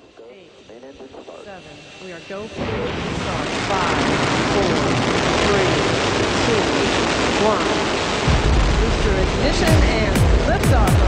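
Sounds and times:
rocket launch roar: 0:02.1 - 0:11.0.

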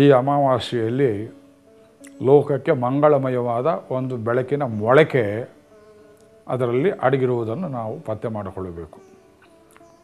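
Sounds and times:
man talking: 0:00.0 - 0:01.4, 0:02.1 - 0:05.5, 0:06.5 - 0:09.0
faint steady hum: 0:00.0 - 0:10.0.

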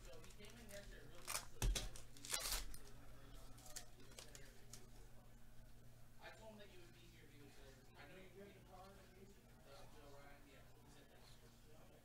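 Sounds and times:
card pack tearing and crinkling: 0:00.1 - 0:02.9.

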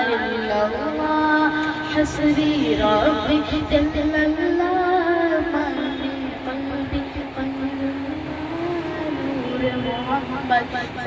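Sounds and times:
boy singing unaccompanied: 0:00.0 - 0:11.0.

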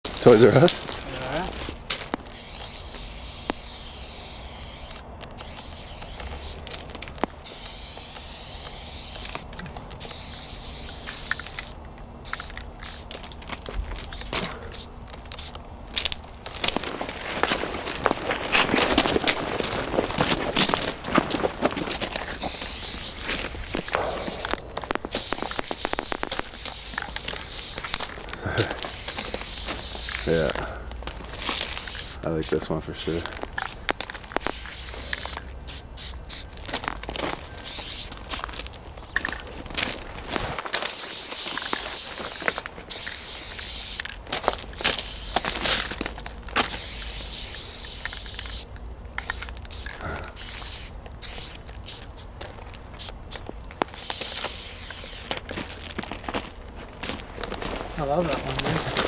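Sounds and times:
aerosol spray can hissing: 0:02.3 - 0:06.6, 0:07.4 - 0:13.1, 0:14.0 - 0:15.5, 0:22.4 - 0:28.1, 0:28.8 - 0:30.6, 0:31.4 - 0:33.8, 0:34.4 - 0:36.5, 0:37.6 - 0:38.5, 0:40.8 - 0:44.1, 0:44.8 - 0:45.6, 0:46.7 - 0:52.3, 0:53.0 - 0:55.3
sharp clicks and scraping: 0:10.8 - 0:32.2.

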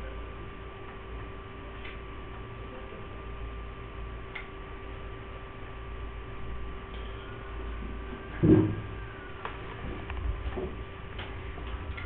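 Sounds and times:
low hum: 0:00.0 - 0:12.0
faint high tones: 0:06.8 - 0:09.4.

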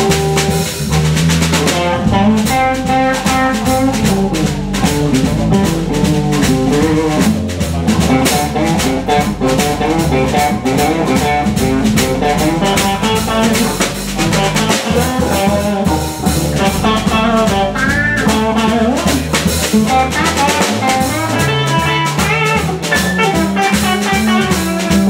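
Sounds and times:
bass guitar: 0:00.0 - 0:25.0
drum kit cymbal and snare: 0:00.0 - 0:25.0
electric guitar: 0:00.0 - 0:25.0.

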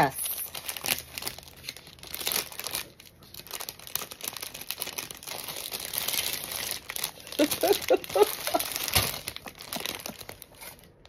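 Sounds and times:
plastic package crinkling: 0:00.0 - 0:11.0.

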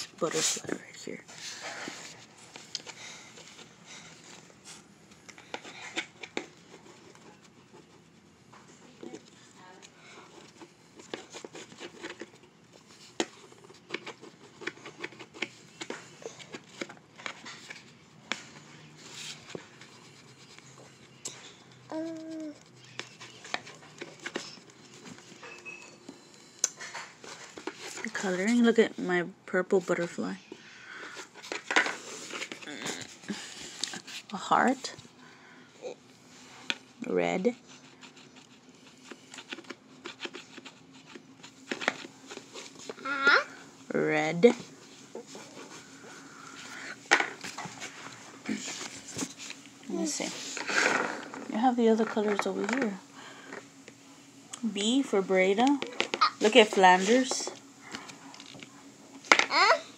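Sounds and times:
crayon scratching on paper: 0:09.0 - 0:16.0, 0:37.4 - 0:43.1
crayon tapping paper: 0:13.1 - 0:16.0.

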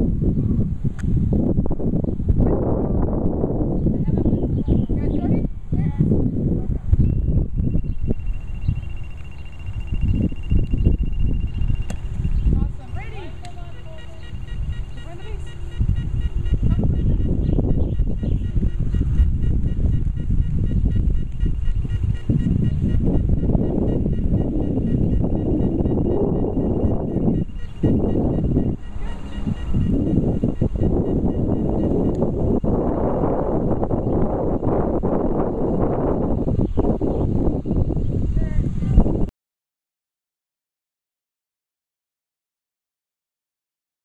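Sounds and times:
gusty wind on microphone: 0:00.0 - 0:39.3
rapid high electronic beeping: 0:07.7 - 0:11.9, 0:12.8 - 0:32.8.

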